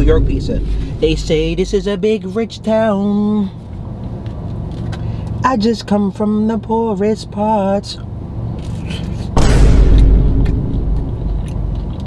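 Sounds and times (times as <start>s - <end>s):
deep boom with low rumble: 0.0s - 1.8s, 9.4s - 12.0s.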